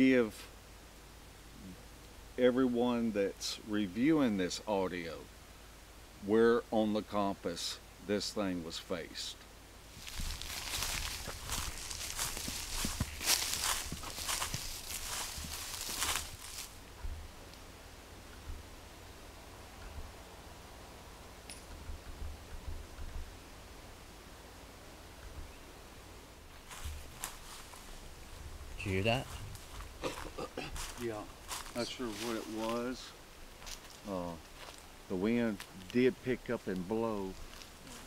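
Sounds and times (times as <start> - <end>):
footsteps crunching on dry leaves: 9.9 - 16.9, 26.5 - 28.4, 29.2 - 34.9, 37.3 - 38.0.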